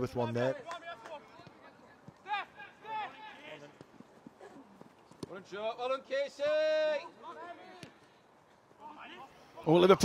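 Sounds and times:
outdoor background noise: 0:00.0 - 0:10.0
players shouting: 0:00.2 - 0:08.1.

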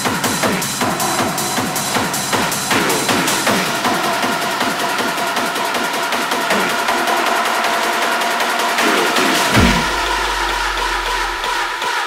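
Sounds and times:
rapid high percussion: 0:00.0 - 0:12.0
deep sub-bass tone: 0:09.5 - 0:11.6.

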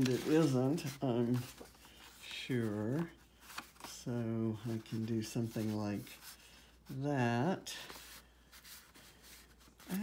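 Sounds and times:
paper strips rustling: 0:00.0 - 0:07.0, 0:07.8 - 0:10.0.

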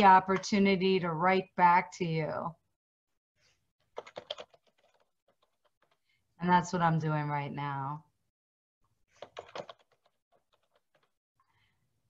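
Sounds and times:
computer keyboard typing: 0:03.8 - 0:06.0, 0:09.2 - 0:11.2.

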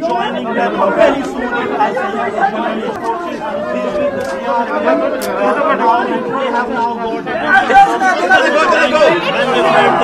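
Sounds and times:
voices talking over each other: 0:00.0 - 0:10.0.

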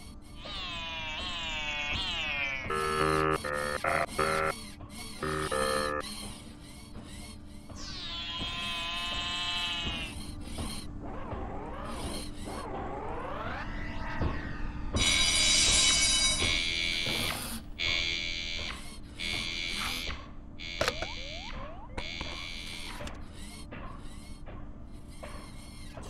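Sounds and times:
electronic buzzing bursts: 0:00.9 - 0:04.6, 0:05.2 - 0:06.0, 0:19.2 - 0:22.9
short electronic pitch glides: 0:02.6 - 0:04.5, 0:05.2 - 0:06.0
steady low hum: 0:02.6 - 0:07.9
synthesized sweeping tone: 0:02.7 - 0:04.5, 0:05.2 - 0:06.0.

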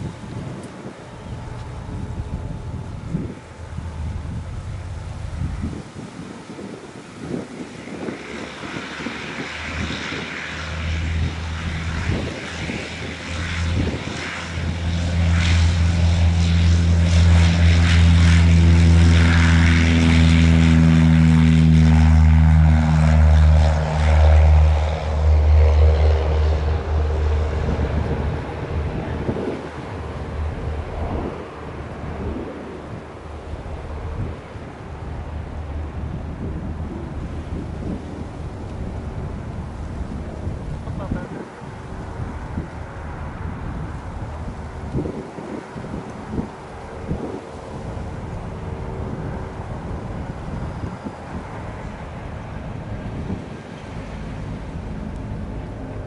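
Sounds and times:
light aircraft engine and propeller: 0:00.0 - 0:56.0.

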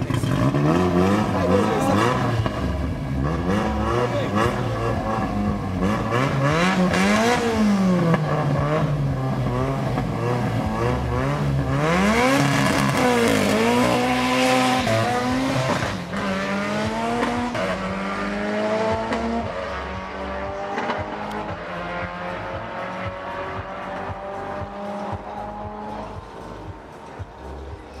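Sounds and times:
car engines revving hard: 0:00.0 - 0:28.0.

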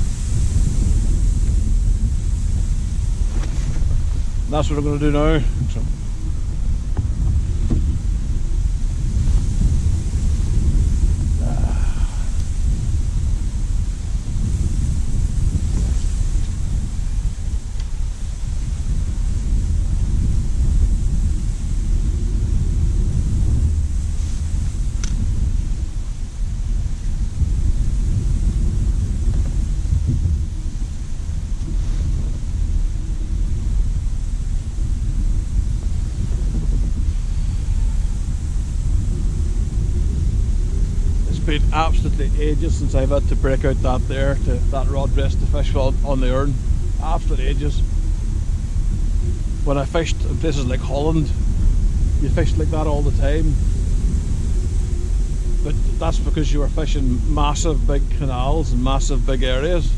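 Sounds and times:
strong wind buffeting microphone: 0:00.0 - 0:59.9.

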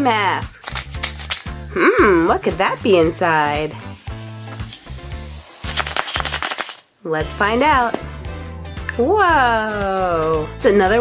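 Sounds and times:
background music: 0:00.0 - 0:11.0
bead chain rattling in plastic egg: 0:00.6 - 0:01.6, 0:05.4 - 0:06.8.

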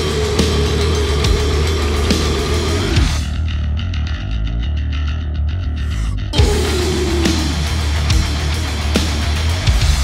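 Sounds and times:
heavy metal music: 0:00.0 - 0:10.0.

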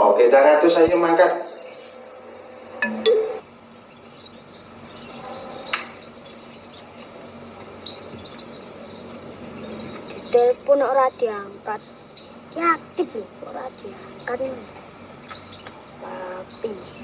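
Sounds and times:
birds chirping: 0:00.0 - 0:17.0
high insect drone: 0:00.0 - 0:17.0.

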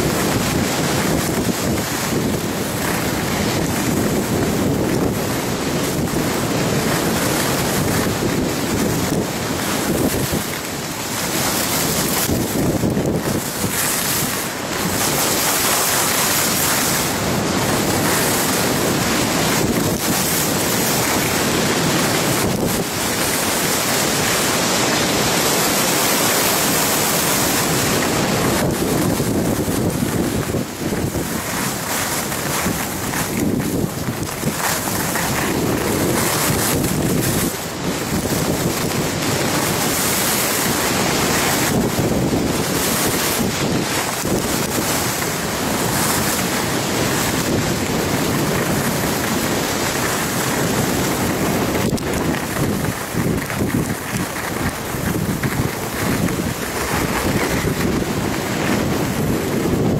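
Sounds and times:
skis scraping on packed snow: 0:00.0 - 0:59.9
wind rushing over microphone: 0:00.0 - 0:59.9.

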